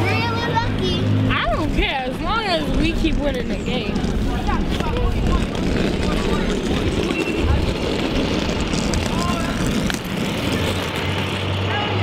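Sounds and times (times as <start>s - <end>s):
deep engine hum: 0.0s - 12.0s
faint voices: 0.0s - 12.0s
street traffic rumble: 0.0s - 12.0s.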